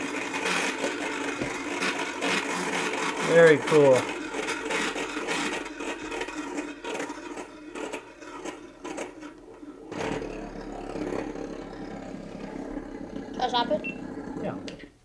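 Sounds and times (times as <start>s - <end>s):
gyroscope rotor whirring: 0.0s - 14.9s.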